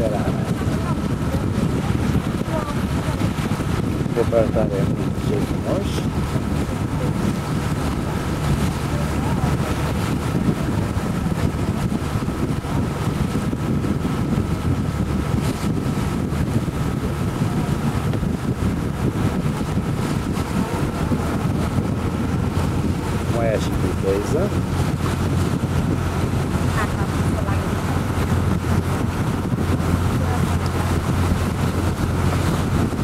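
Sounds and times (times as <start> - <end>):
boat engine drone: 0.0 - 33.0
wind buffeting microphone: 0.0 - 33.0.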